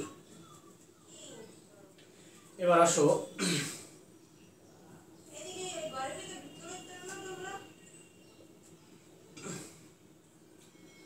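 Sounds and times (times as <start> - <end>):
man clearing his throat: 3.4 - 3.9.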